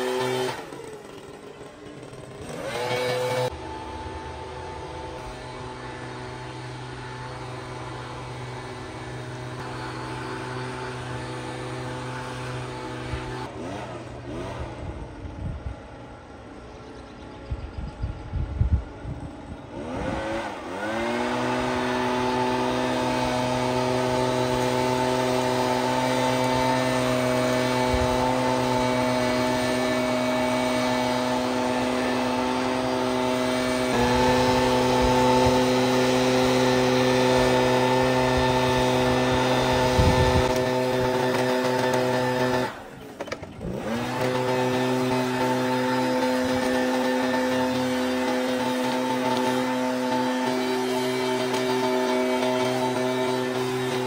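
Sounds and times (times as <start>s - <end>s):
leaf blower running: 0.0s - 17.4s, 18.2s - 54.0s.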